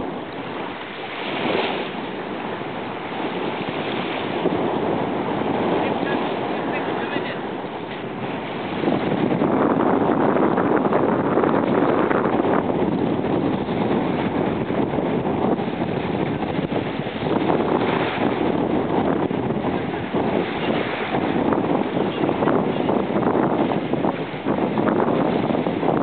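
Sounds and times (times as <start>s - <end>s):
wind on microphone: 0.0s - 26.0s.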